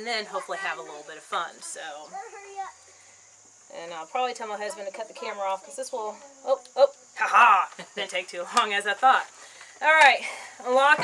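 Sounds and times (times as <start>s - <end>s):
woman talking: 0.0s - 2.2s, 3.7s - 11.0s
high-pitched insect chorus: 0.0s - 11.0s.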